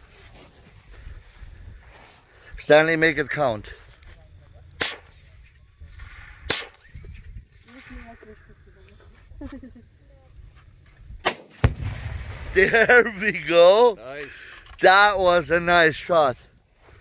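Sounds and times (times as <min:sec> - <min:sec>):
rifle shot: 0:04.8 - 0:05.2, 0:06.0 - 0:07.0, 0:11.2 - 0:12.8
sharp cracks: 0:04.8 - 0:05.3, 0:06.0 - 0:07.0, 0:11.2 - 0:13.2
exploding target bang: 0:11.2 - 0:13.2.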